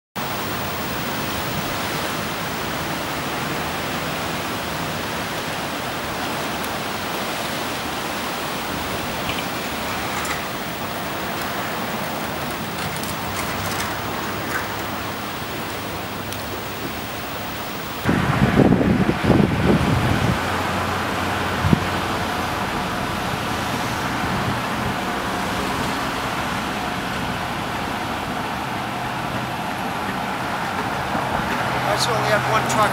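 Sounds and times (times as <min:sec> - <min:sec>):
water rushing under bridge: 0:00.2 - 0:32.9.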